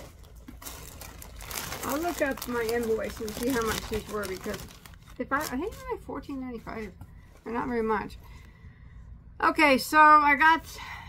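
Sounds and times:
plastic bag crinkling: 0:00.0 - 0:07.8.

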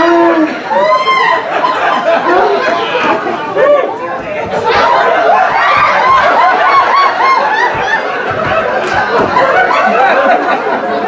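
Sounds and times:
crowd chatter: 0:00.0 - 0:11.0
laughter: 0:01.1 - 0:03.2, 0:04.8 - 0:11.0.

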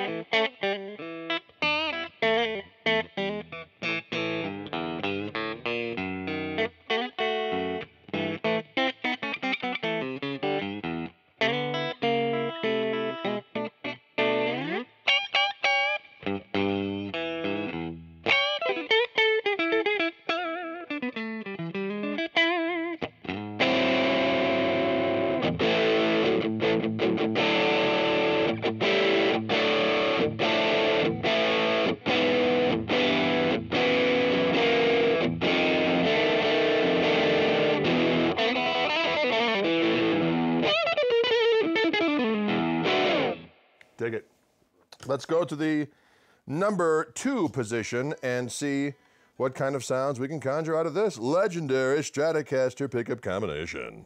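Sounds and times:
electric guitar strummed chords: 0:00.0 - 0:43.6
electric guitar lead lines: 0:00.0 - 0:44.0.

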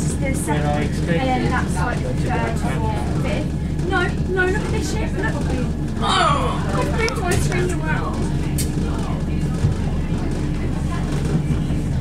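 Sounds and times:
train diesel engine rumble: 0:00.0 - 0:12.0
train wheels on rails: 0:00.0 - 0:12.0.

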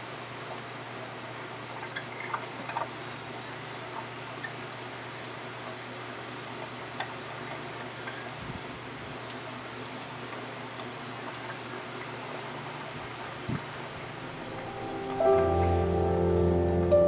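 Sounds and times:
potter's wheel humming: 0:01.2 - 0:17.0.

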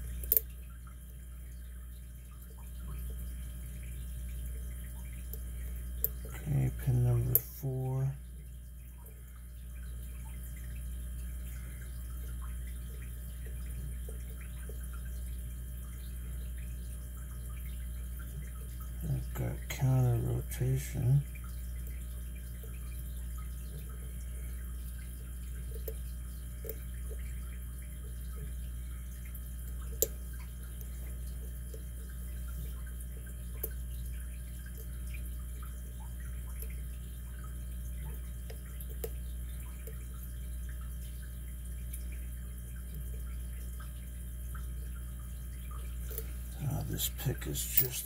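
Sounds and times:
steady low hum: 0:00.0 - 0:48.0.

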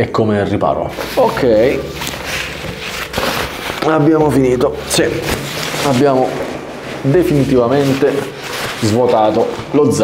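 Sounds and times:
backpack fabric handled: 0:00.9 - 0:10.0
nylon jacket rustling: 0:00.9 - 0:10.0.

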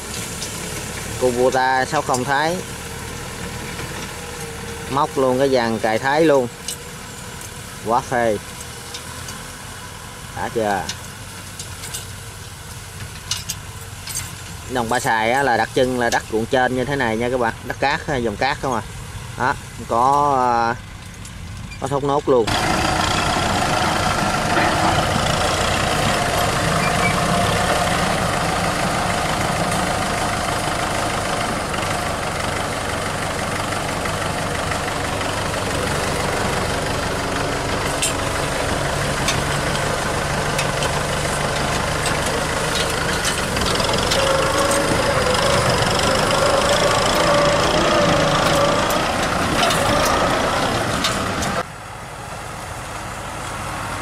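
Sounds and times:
tractor diesel engines running: 0:00.0 - 0:54.0.

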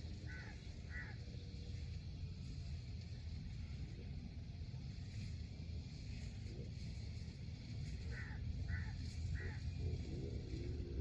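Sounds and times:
bird calls: 0:00.0 - 0:01.7, 0:07.9 - 0:10.8
steady low rumble: 0:00.0 - 0:11.0.

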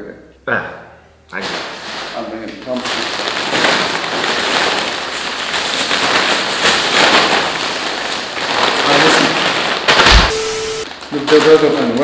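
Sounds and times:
plastic and foil bags crinkling: 0:01.4 - 0:12.0.

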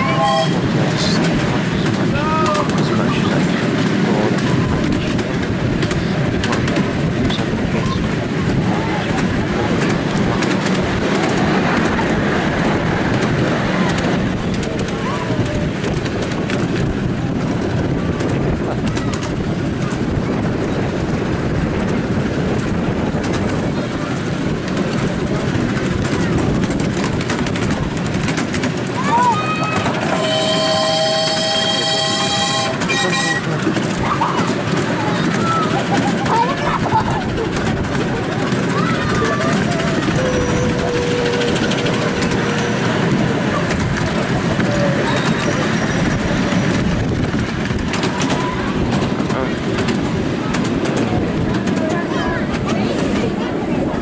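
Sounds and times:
steam whistle: 0:00.0 - 0:00.6, 0:30.1 - 0:33.5
train wheels rumbling on rails: 0:00.0 - 0:54.0.

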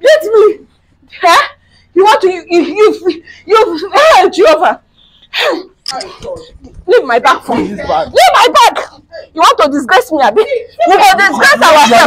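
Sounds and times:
people shouting argument: 0:00.0 - 0:04.8, 0:05.4 - 0:12.0.

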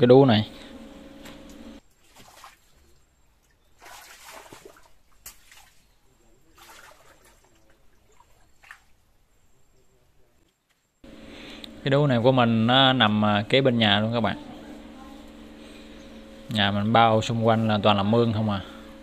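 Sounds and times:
water sloshing and splashing: 0:01.8 - 0:09.1.

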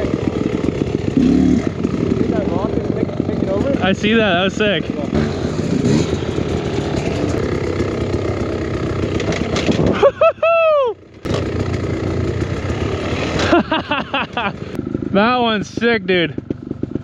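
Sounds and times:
dirt bike engine under throttle: 0:00.0 - 0:17.0.

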